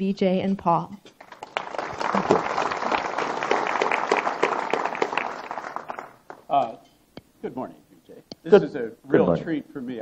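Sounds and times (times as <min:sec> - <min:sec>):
audience applauding: 0:01.2 - 0:06.5.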